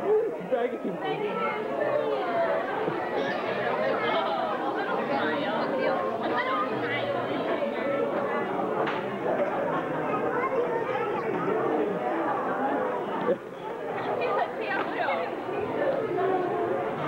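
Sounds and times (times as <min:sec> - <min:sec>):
chatter of many voices: 0:00.0 - 0:17.0.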